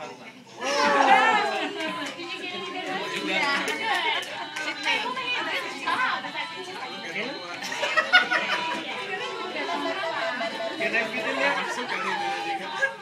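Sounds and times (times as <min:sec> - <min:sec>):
voices chattering: 0:00.0 - 0:13.0
loud cry: 0:00.6 - 0:01.7.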